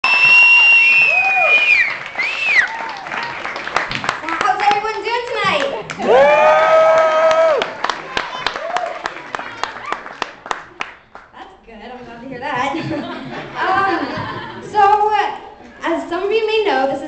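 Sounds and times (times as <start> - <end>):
high whistles: 0.0 - 2.9
audience whooping: 0.0 - 3.8, 6.0 - 10.4
scattered clapping: 0.2 - 6.2, 6.9 - 11.3.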